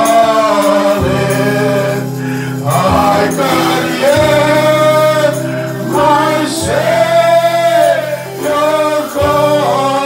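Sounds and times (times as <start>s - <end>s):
electronic keyboard: 0.0s - 10.0s
man singing a hymn: 0.0s - 10.0s.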